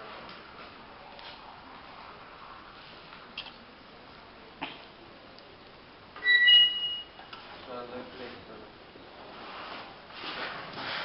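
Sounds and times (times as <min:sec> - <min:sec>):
high-pitched metallic squeal: 0:06.2 - 0:07.2.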